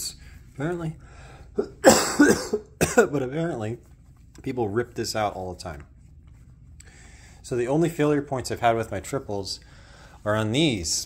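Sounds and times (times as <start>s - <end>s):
man coughing: 1.6s - 3.3s.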